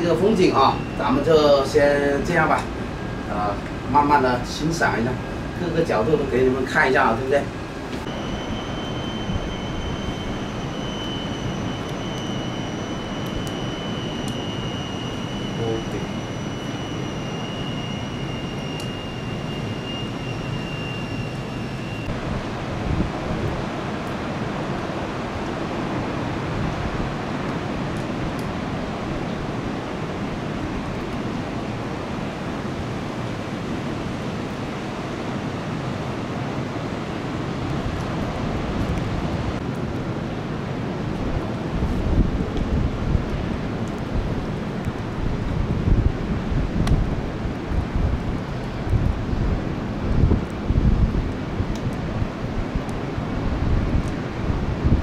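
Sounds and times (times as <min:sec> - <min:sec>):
faint high thin whine: 0:00.0 - 0:23.0.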